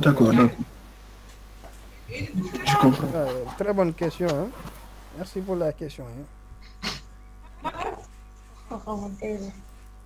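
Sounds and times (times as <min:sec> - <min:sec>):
low electrical hum: 0:00.0 - 0:10.0
person speaking: 0:02.1 - 0:06.3.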